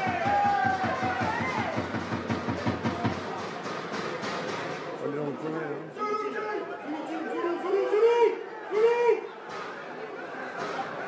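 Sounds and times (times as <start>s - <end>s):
people shouting: 0.0s - 2.0s, 6.0s - 9.4s.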